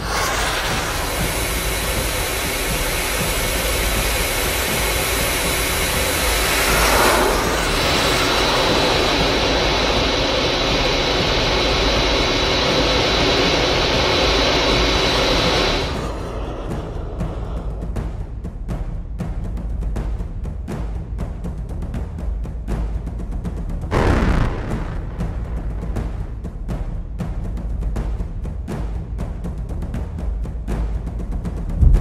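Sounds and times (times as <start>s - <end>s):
short whoosh: 0.0s - 2.6s, 31.8s - 32.0s
loud steady jet roar: 0.0s - 18.2s, 23.9s - 26.9s, 31.8s - 32.0s.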